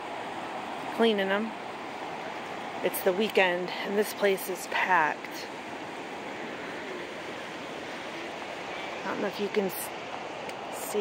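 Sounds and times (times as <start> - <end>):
fast-flowing river rushing: 0.0 - 11.0.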